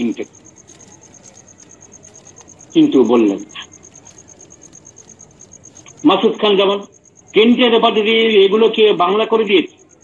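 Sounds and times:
person speaking: 0.0s - 4.8s
cricket chirping: 0.0s - 10.0s.

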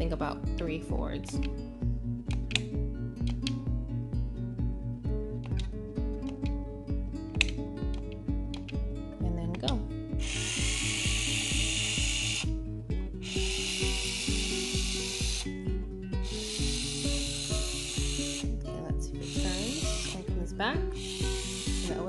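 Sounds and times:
background music with steady beat: 0.0s - 22.0s
robot motor whirring: 10.2s - 12.5s, 13.2s - 15.5s, 16.2s - 18.5s, 19.2s - 20.2s, 21.0s - 22.0s.

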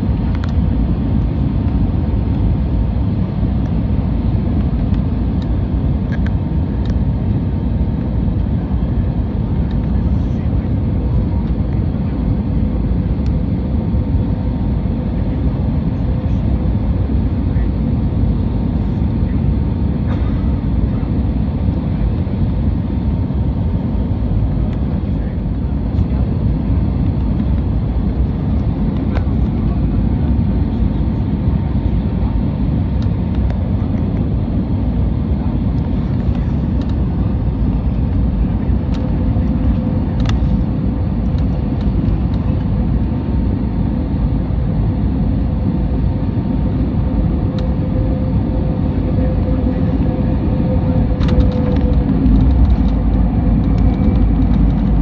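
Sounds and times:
engine and airflow roar: 0.0s - 55.0s.

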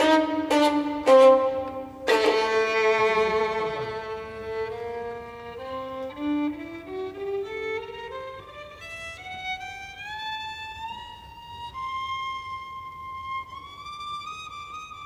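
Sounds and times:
bowed violin phrase: 0.0s - 15.0s.

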